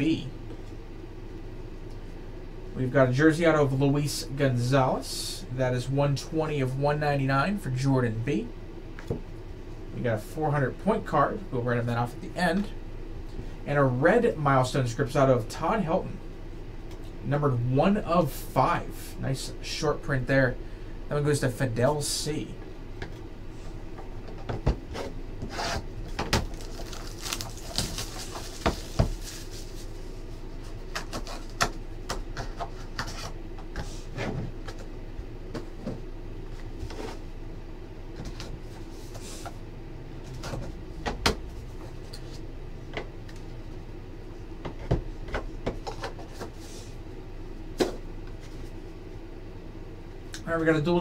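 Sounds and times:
cards rustling: 0:26.4 - 0:30.0.

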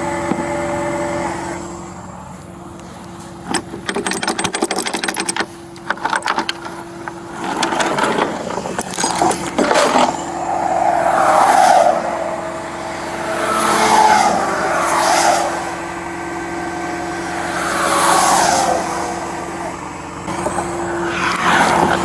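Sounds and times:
hydraulic winch humming: 0:00.0 - 0:22.0
vehicles swishing by on wet road: 0:10.2 - 0:19.9.

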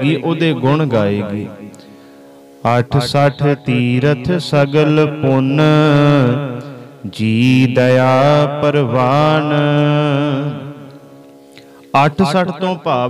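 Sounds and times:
man singing a slow chant: 0:02.6 - 0:11.0.

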